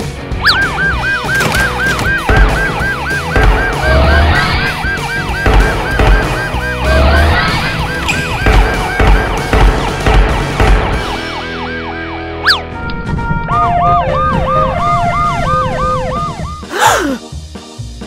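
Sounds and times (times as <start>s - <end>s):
background music: 0.0s - 18.0s
rising tone: 0.4s - 1.4s
fast electronic siren whoop: 0.4s - 9.0s, 11.7s - 12.7s, 13.5s - 16.7s.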